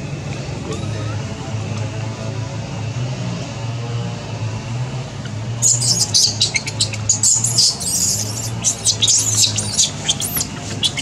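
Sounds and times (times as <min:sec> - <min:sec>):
infant monkey crying squeals: 0:05.6 - 0:11.0.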